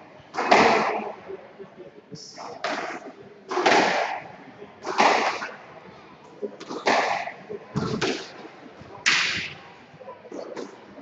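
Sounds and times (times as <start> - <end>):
racket striking squash ball: 2.6 - 5.5, 9.0 - 9.6.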